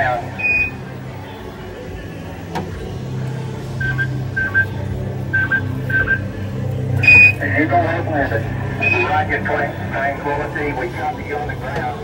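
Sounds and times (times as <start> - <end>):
steady low hum: 0.0 - 12.0
short high electronic beeps: 7.0 - 7.4.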